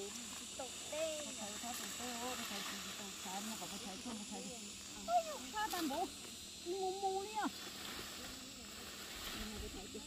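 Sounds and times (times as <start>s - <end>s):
faint voices talking: 0.0s - 10.0s
high-pitched hiss: 0.0s - 10.0s.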